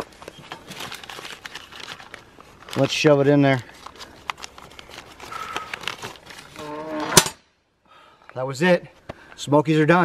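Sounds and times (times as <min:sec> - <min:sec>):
paper crinkling and rustling: 0:00.0 - 0:06.8.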